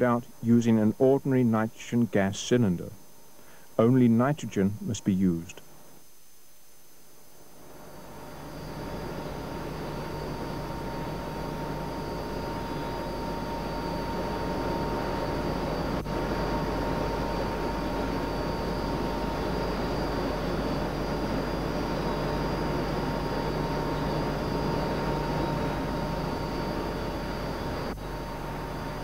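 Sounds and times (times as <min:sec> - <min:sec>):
industrial machinery hum and whine: 0:00.0 - 0:29.0.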